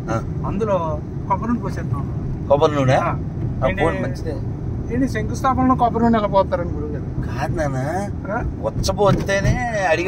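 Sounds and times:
engine rumble: 0.0s - 10.0s
person speaking in car: 0.0s - 10.0s
road noise: 0.0s - 10.0s.

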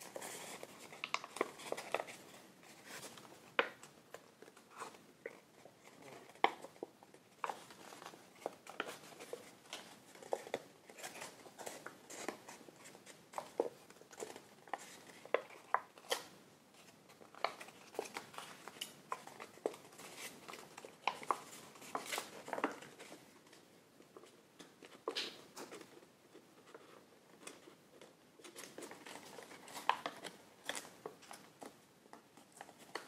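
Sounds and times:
stiff paper crackling and crinkling: 0.0s - 33.0s.

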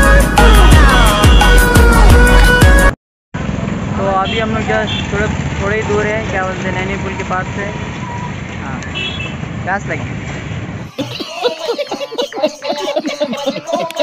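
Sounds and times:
motorcycles and cars passing: 3.4s - 11.0s
road traffic rumble: 3.4s - 14.0s
man talking: 12.1s - 14.0s.

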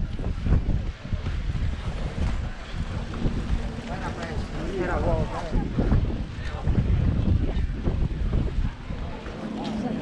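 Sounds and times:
people's voices: 0.0s - 10.0s
wind buffeting microphone: 0.0s - 10.0s.

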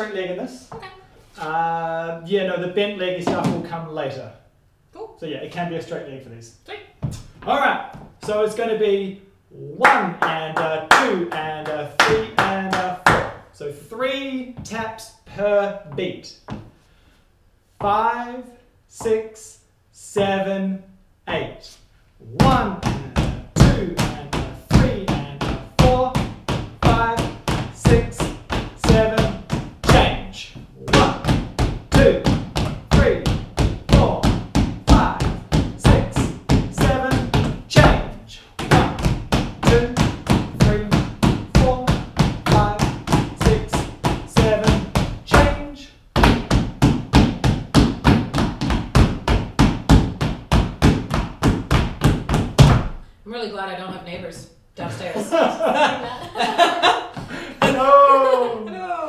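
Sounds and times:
tap shoes on hardwood floor: 15.9s - 16.8s, 22.4s - 45.6s, 46.2s - 53.0s, 57.1s - 57.8s.

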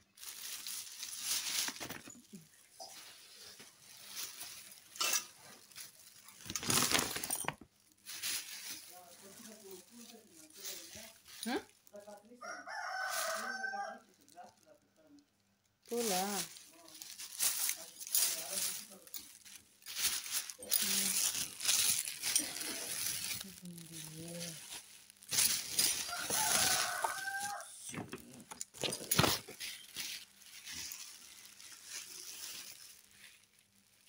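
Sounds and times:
cloth rustling and handling: 0.1s - 12.2s, 15.9s - 34.0s
rooster crowing: 12.4s - 14.0s, 26.0s - 27.8s.

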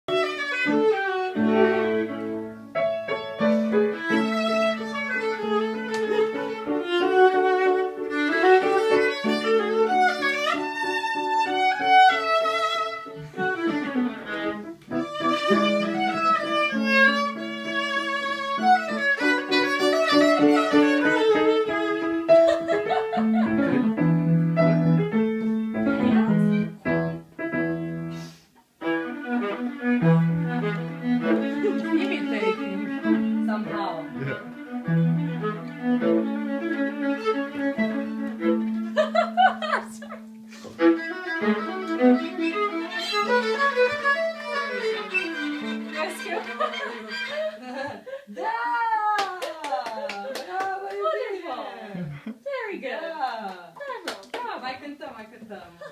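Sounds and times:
violin slow melody: 0.1s - 48.2s.

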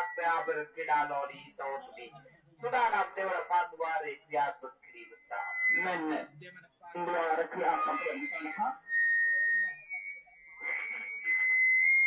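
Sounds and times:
high-pitched whistling tone: 5.2s - 6.3s, 7.1s - 12.0s.

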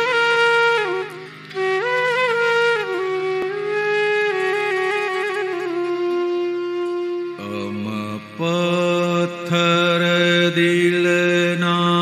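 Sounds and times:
person singing slowly: 7.4s - 12.0s.

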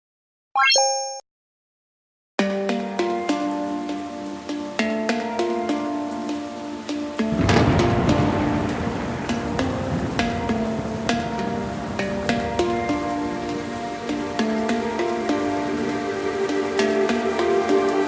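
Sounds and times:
gentle background music: 2.4s - 18.0s
rain-like hiss: 2.4s - 18.0s
low thunder rumble: 7.3s - 12.9s.

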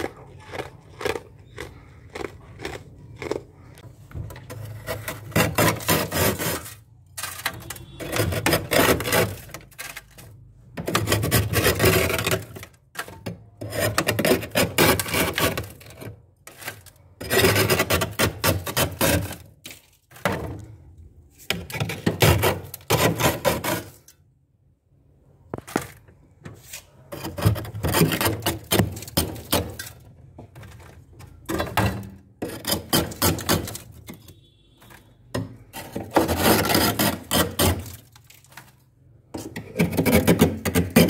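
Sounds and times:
metal spoon scraping frost: 4.4s - 20.7s, 21.3s - 24.2s, 26.6s - 41.0s.

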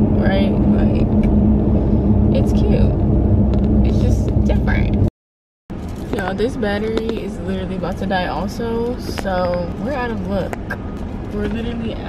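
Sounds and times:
car road and engine rumble: 0.0s - 5.1s, 5.7s - 12.0s.

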